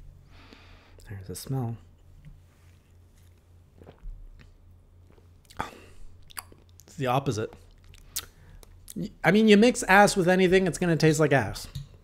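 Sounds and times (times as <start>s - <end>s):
low steady hum: 0.0s - 12.0s
person sipping and swallowing: 3.2s - 6.9s, 7.6s - 9.0s.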